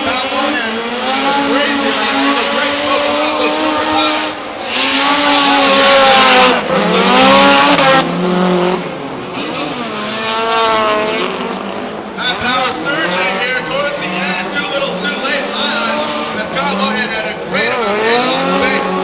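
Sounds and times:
car engines revving: 0:00.0 - 0:19.0.

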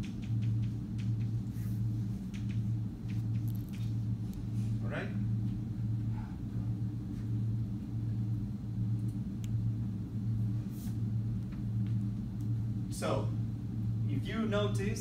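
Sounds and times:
faint clicks and taps: 0:00.0 - 0:01.4, 0:02.3 - 0:04.4
low room hum: 0:00.0 - 0:15.0.

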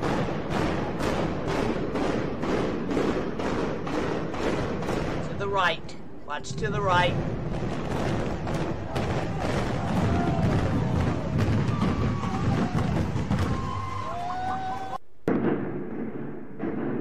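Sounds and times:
building collapsing rumble: 0:06.4 - 0:14.2.

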